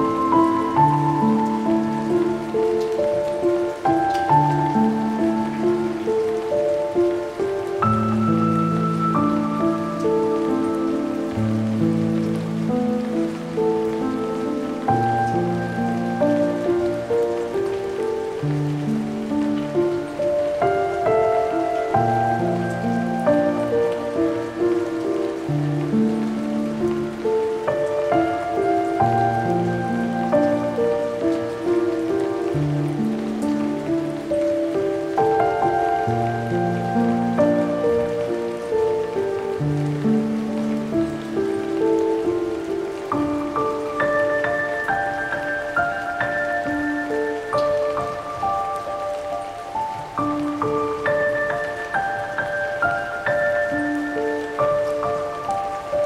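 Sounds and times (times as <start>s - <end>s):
rain: 0.0s - 56.0s
slow piano music: 0.0s - 56.0s.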